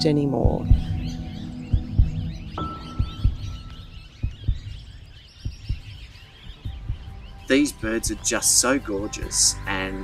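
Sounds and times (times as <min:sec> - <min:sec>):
heartbeat thumps: 0:00.0 - 0:07.5.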